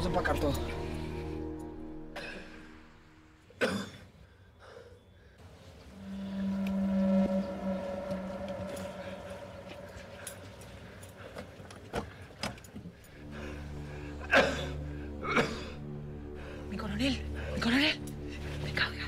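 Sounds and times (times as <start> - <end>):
low drone: 0.0 - 3.6, 5.5 - 11.9, 13.0 - 19.0
high sweeping squeals: 5.8 - 11.4.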